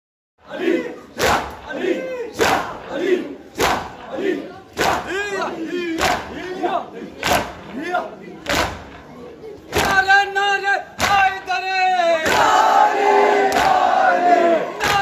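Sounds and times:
men chanting: 0.4s - 8.4s, 10.8s - 15.0s
crowd beating chests in unison: 0.5s - 11.5s, 12.1s - 15.0s.

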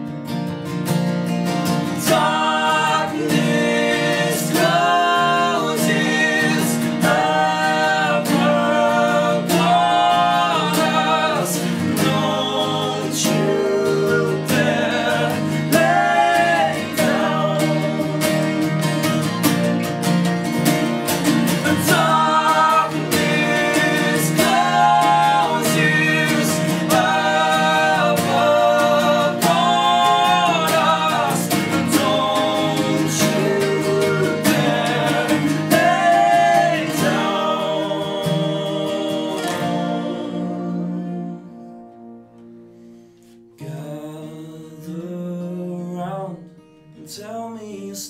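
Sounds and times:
strummed acoustic guitars: 0.0s - 48.0s
voices singing in harmony: 1.7s - 19.4s, 21.1s - 41.9s.

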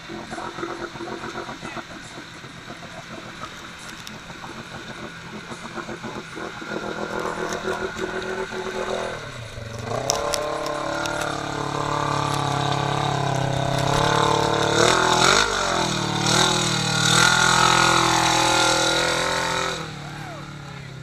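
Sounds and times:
engine revving hard: 0.0s - 21.0s
vehicle churning through mud: 0.0s - 21.0s.

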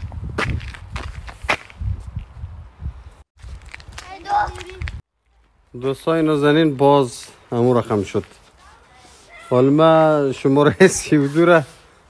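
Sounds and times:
footsteps on snow: 7.0s - 9.6s.

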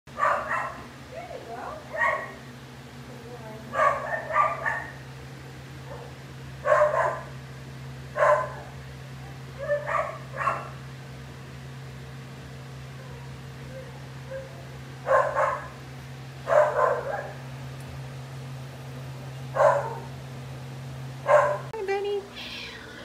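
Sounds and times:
treadmill motor hum: 0.1s - 22.1s.

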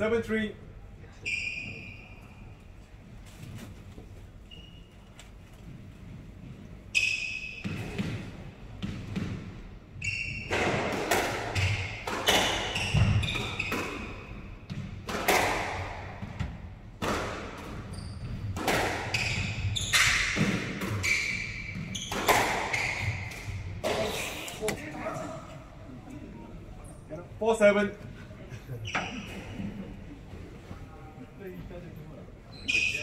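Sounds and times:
squash ball hits: 7.6s - 9.6s, 10.4s - 24.8s
shoes squeaking on wooden floor: 17.8s - 25.4s, 28.7s - 29.9s, 32.5s - 33.0s.

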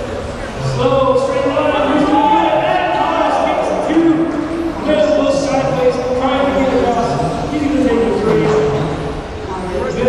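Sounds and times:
man speaking over public address: 0.0s - 10.0s.

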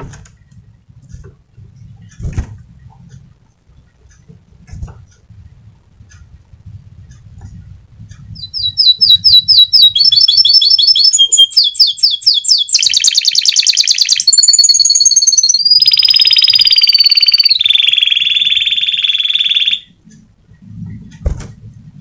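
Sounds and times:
canary singing: 5.0s - 20.6s.

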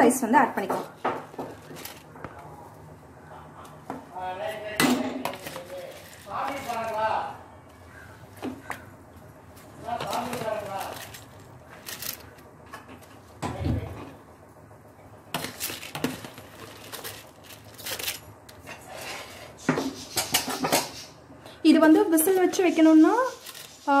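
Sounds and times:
woman's voice: 0.0s - 0.9s, 21.6s - 24.0s.

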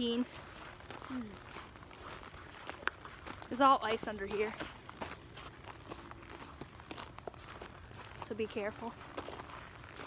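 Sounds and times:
footsteps on snow over ice: 0.0s - 10.0s.

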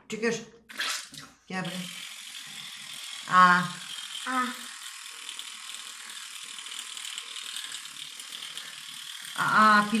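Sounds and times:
electric toothbrush rattling: 1.6s - 10.0s.

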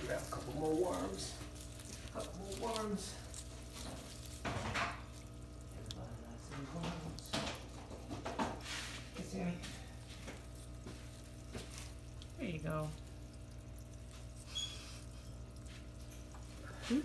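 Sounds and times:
shallow water splashing: 0.0s - 17.0s
steady low hum: 0.0s - 17.0s.

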